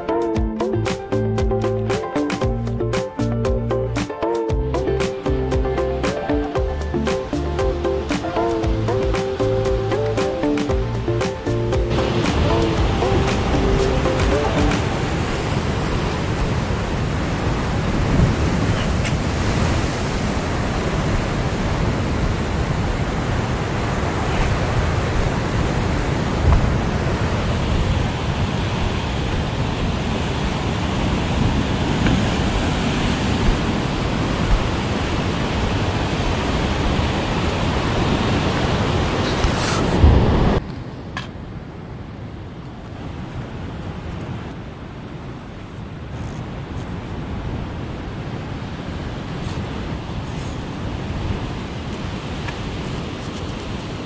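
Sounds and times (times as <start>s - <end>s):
background music: 0.0s - 16.4s
surf breaking on rocks: 11.3s - 22.6s.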